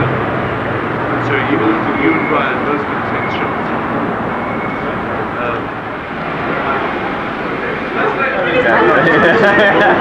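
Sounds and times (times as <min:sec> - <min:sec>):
indistinct group chatter: 0:00.0 - 0:10.0.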